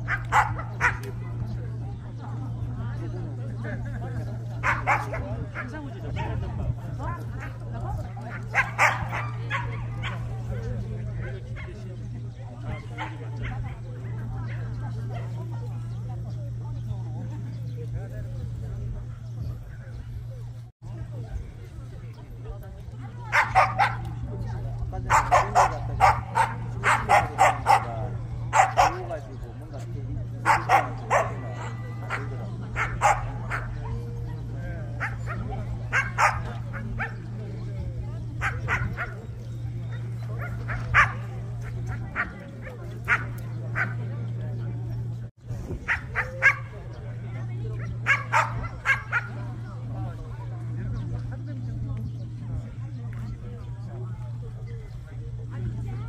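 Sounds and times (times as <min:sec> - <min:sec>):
dogs barking and yipping: 0:00.0 - 0:01.5, 0:04.4 - 0:11.8, 0:23.2 - 0:29.4, 0:30.2 - 0:37.4, 0:38.3 - 0:44.5, 0:45.7 - 0:47.0, 0:47.7 - 0:49.7
steady low hum: 0:00.0 - 0:56.0.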